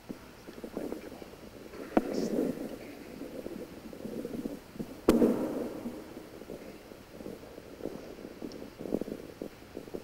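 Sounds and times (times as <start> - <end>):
sharp reverberant thump: 5.0 - 6.2.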